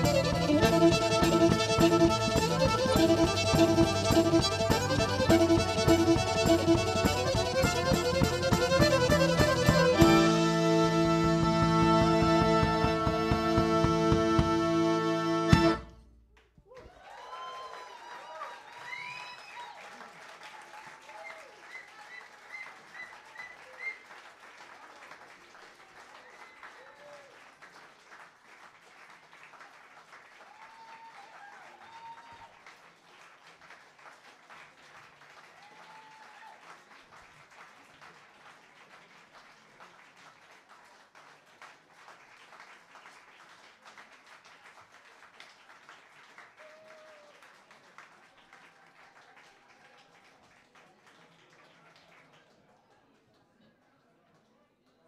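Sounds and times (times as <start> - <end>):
audience applauding: 16.6 - 53.2.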